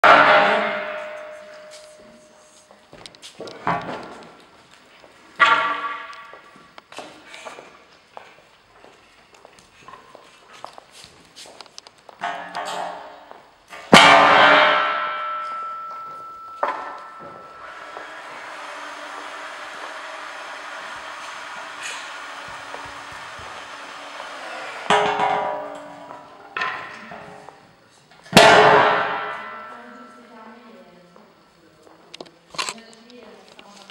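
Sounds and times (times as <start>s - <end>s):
steel beam clanging on concrete: 0.0s - 2.6s, 5.4s - 6.4s, 12.2s - 27.3s, 28.3s - 30.2s.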